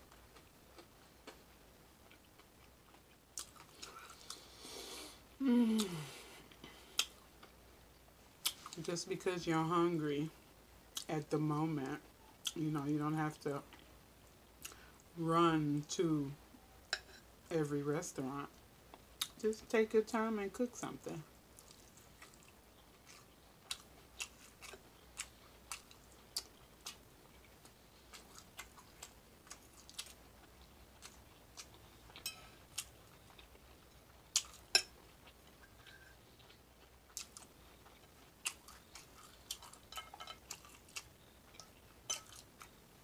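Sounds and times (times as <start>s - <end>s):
chewing and mouth sounds: 2.0s - 4.4s, 21.6s - 42.8s.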